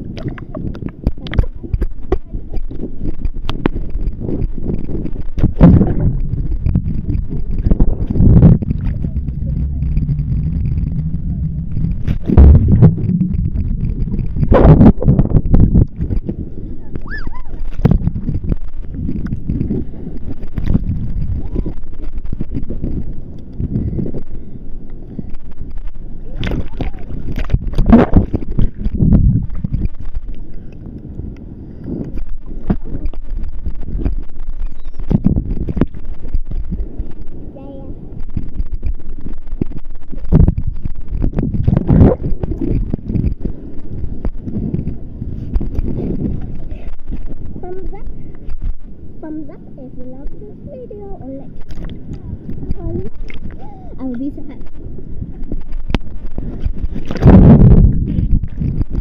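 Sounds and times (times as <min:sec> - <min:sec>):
sea water churning and splashing: 0:00.0 - 0:49.4
wave washing over camera: 0:00.0 - 0:59.0.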